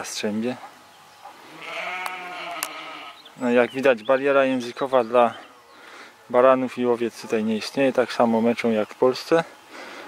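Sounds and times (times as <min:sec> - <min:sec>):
sheep bleating: 0:01.5 - 0:03.3.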